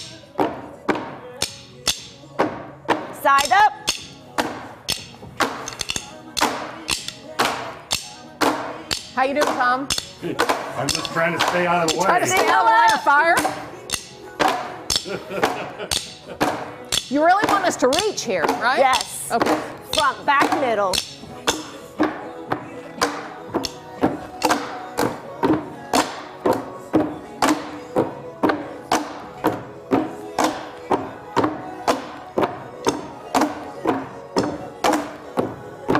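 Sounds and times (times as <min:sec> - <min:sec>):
backing music track: 0:00.0 - 0:35.9
drumsticks hitting plastic crates: 0:00.4 - 0:35.9.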